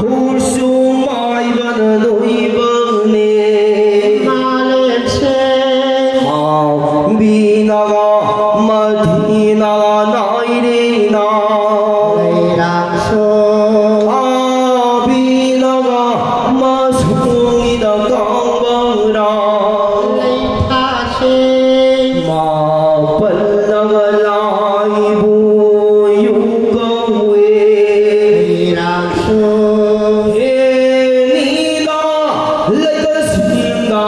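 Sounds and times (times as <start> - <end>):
low drone: 0.0 - 32.8
chant-like ritual singing: 0.0 - 34.0.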